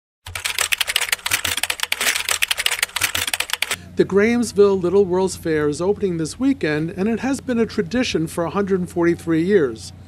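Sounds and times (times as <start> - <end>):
rapid keyboard typing: 0.2 - 3.8.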